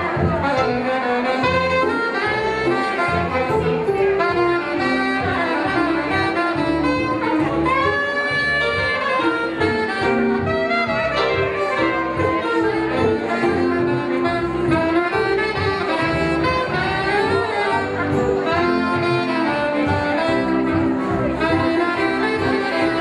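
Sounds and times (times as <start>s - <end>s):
accompaniment with steady bass beat: 0.0s - 23.0s
soprano saxophone melody: 0.0s - 23.0s.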